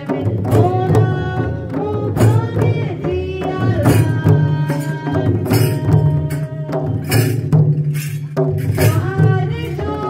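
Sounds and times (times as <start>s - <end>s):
person singing: 0.0s - 7.4s.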